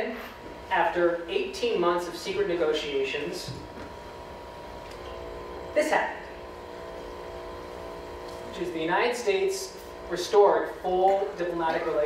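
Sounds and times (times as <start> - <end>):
person speaking: 0.0 - 3.6, 8.4 - 12.0
room hum: 0.0 - 12.0.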